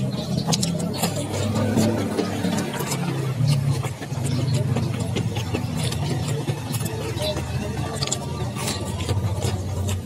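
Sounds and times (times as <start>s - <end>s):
close-up chewing with crunches: 0.0s - 10.0s
wet mouth clicks: 0.4s - 10.0s.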